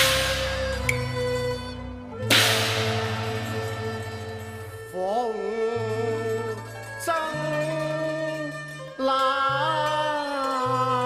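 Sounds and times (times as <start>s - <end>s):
ringing percussion strike: 0.0s - 1.5s, 2.2s - 5.1s
opera instrumental accompaniment: 0.0s - 11.0s.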